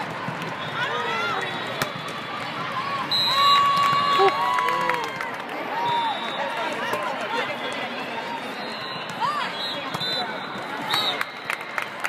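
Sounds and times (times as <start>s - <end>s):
murmur of voices and calls: 0.6s - 11.4s.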